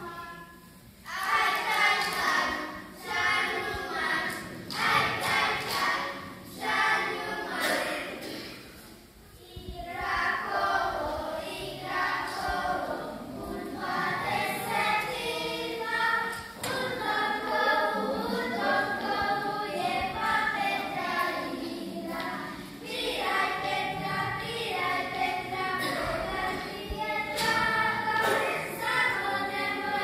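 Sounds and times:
children singing in unison: 0:00.0 - 0:30.0.

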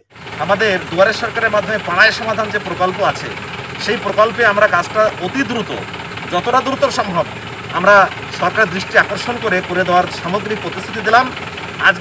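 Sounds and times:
car engine idling: 0:00.0 - 0:12.0
man talking: 0:00.4 - 0:12.0.

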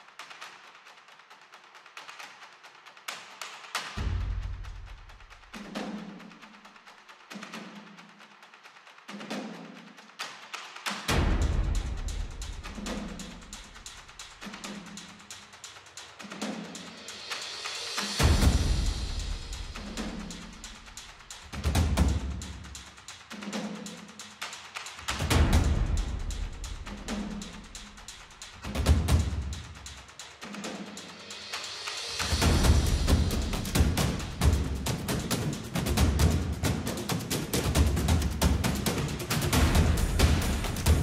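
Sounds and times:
booming timpani drum hits: 0:11.1 - 0:13.6, 0:18.1 - 0:20.8, 0:25.2 - 0:27.8, 0:32.1 - 0:36.9, 0:37.6 - 0:41.0.

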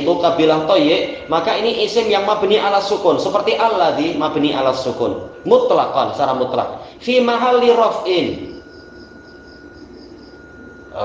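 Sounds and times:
faint steady high tone: 0:00.0 - 0:11.0
insects chirping: 0:00.0 - 0:11.0.

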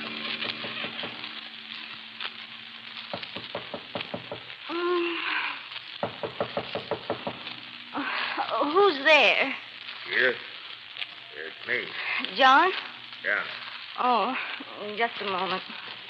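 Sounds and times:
old recording hiss and crackle: 0:00.0 - 0:16.0
rapid knocking on a door: 0:03.3 - 0:04.5, 0:06.0 - 0:07.4.

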